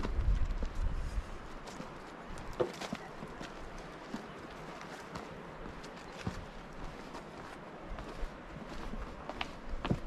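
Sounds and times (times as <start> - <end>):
footsteps on stone: 0.0 - 10.0
soft outdoor background: 0.0 - 10.0.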